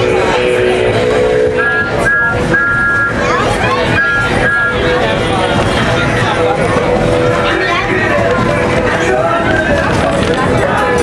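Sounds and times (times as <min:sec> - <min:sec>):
high two-note tone blasts: 0:00.0 - 0:05.1
train running noise: 0:00.0 - 0:11.0
voices: 0:00.0 - 0:11.0.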